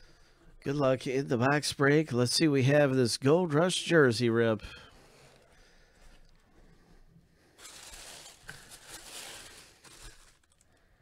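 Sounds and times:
tissue paper rustling: 0:07.6 - 0:10.6.

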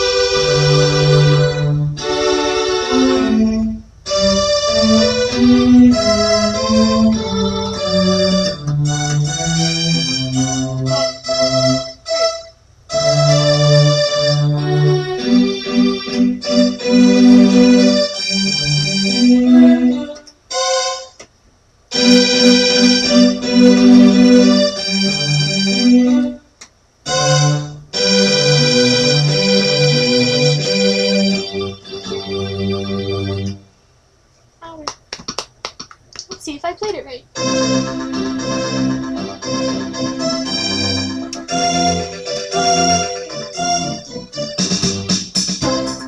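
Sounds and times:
electronic keyboard playing: 0:00.0 - 0:21.2, 0:21.9 - 0:33.6, 0:37.3 - 0:46.0.

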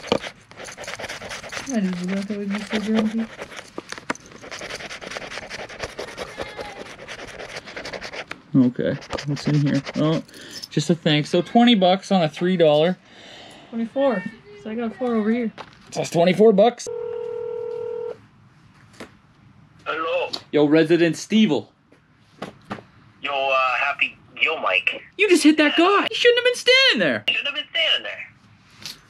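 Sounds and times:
person speaking: 0:00.0 - 0:03.6, 0:04.4 - 0:13.0
scraping scratch ticket: 0:00.0 - 0:10.9.

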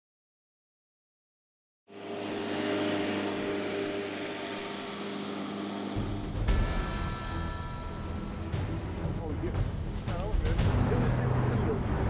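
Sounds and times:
droning music with hum and hiss: 0:01.9 - 0:12.0.

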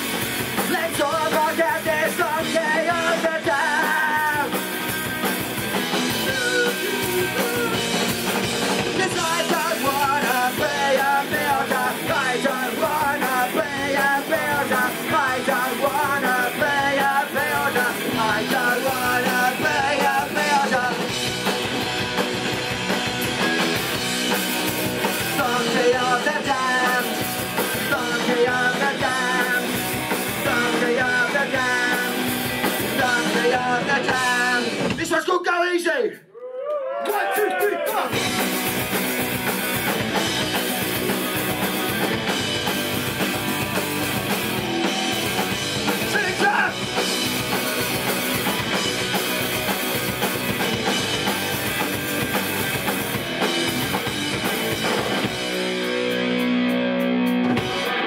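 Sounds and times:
electric guitar: 0:00.0 - 0:35.0, 0:38.1 - 0:58.0
bass guitar: 0:00.0 - 0:35.2, 0:37.9 - 0:58.0
drum kit: 0:00.0 - 0:35.3, 0:37.1 - 0:58.0
person singing: 0:00.6 - 0:04.6, 0:06.1 - 0:08.1, 0:08.9 - 0:21.1, 0:25.3 - 0:34.9.

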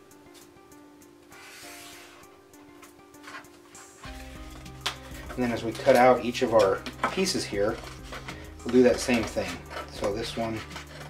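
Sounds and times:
quiet background music: 0:00.0 - 0:11.0
paper rustling on cutting mat: 0:01.4 - 0:02.3, 0:03.2 - 0:11.0.

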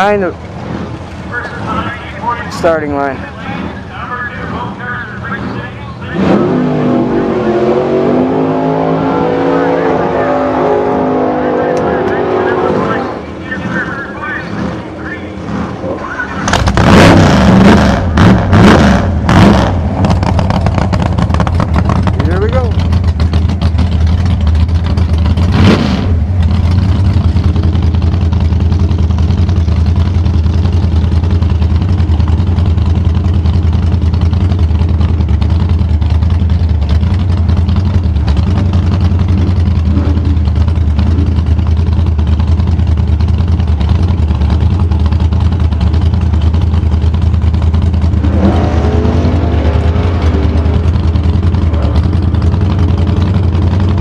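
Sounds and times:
drag car engine revving and idling: 0:00.0 - 0:54.0.

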